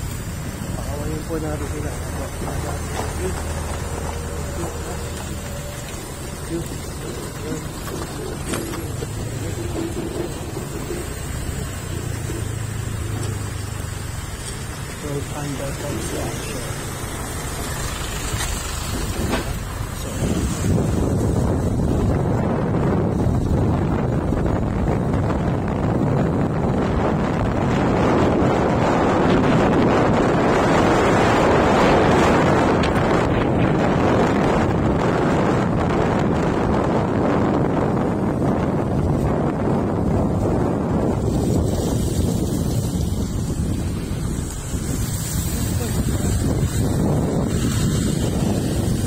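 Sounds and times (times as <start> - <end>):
motorcycle engine: 0.0 - 49.0
wind rushing over microphone: 0.0 - 49.0.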